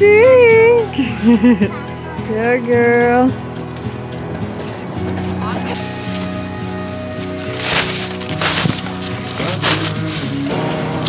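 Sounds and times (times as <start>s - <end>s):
background music: 0.0s - 11.0s
plastic sheeting crinkling: 5.8s - 10.5s.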